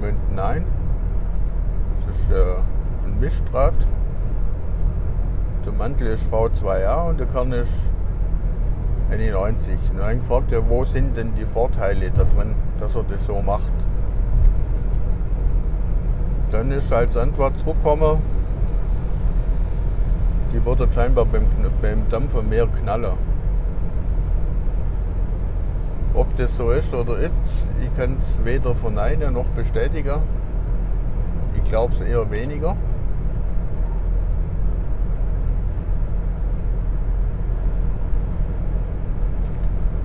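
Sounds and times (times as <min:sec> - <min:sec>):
car road and engine rumble: 0:00.0 - 0:40.0.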